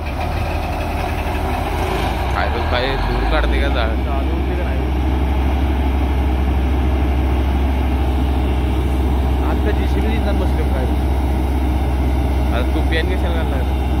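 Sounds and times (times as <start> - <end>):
drilling rig engine droning: 0.0 - 14.0.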